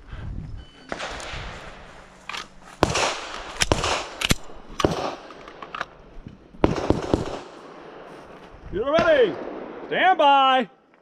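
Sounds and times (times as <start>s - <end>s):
pistol shots with echo: 2.8s - 5.3s, 6.6s - 7.6s.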